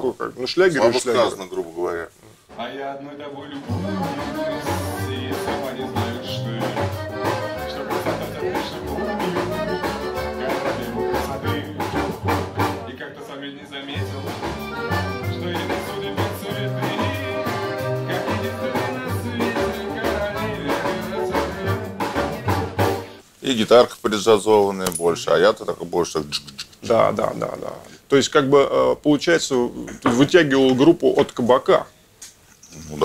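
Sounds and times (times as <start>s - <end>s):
drum kit: 3.4s - 13.0s, 14.0s - 23.9s
accordion: 3.6s - 12.9s, 14.0s - 23.2s
upright double bass: 3.7s - 12.9s, 14.0s - 23.2s.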